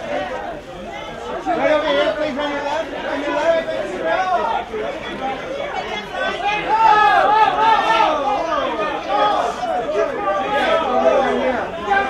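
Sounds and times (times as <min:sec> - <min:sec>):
many voices calling out: 0:00.0 - 0:12.0.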